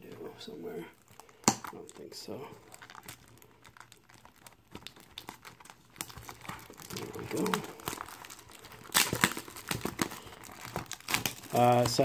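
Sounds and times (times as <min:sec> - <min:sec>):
plastic shrink wrap crinkling: 0:00.1 - 0:12.0
plastic wrap crackles: 0:00.1 - 0:12.0.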